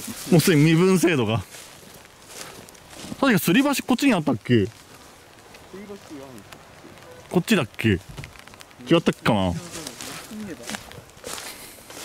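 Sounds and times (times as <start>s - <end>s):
footsteps on leaves and undergrowth: 0.0s - 7.0s, 7.9s - 12.0s
quiet voice murmuring: 5.7s - 7.3s.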